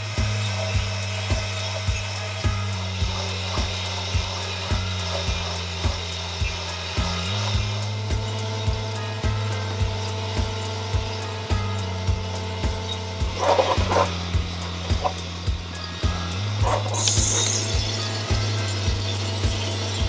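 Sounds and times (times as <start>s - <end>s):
background music chords: 0.0s - 20.0s
coffee beans tumbling in drum: 0.0s - 20.0s.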